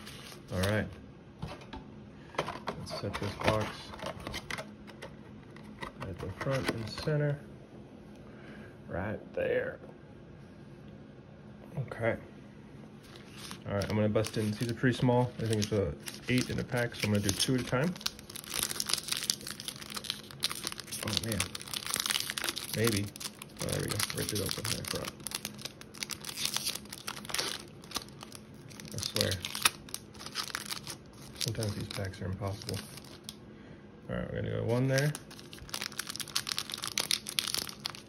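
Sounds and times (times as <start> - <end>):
plastic wrapper crinkling: 13.0 - 33.4, 34.6 - 38.0.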